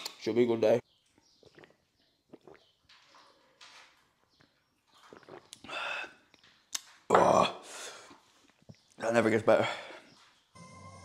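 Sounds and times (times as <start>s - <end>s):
person gulping a drink: 1.4s - 2.8s, 5.0s - 7.6s.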